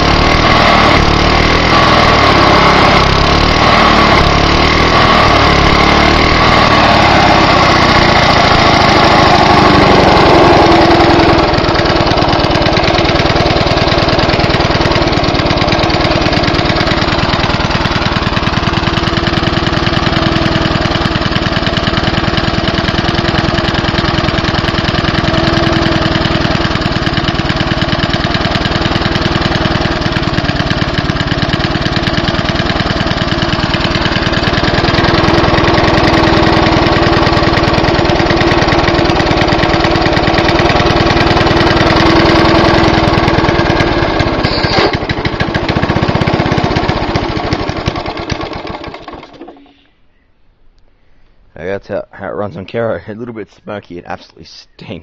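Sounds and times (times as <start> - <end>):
lawn mower engine running: 0.0 - 49.8.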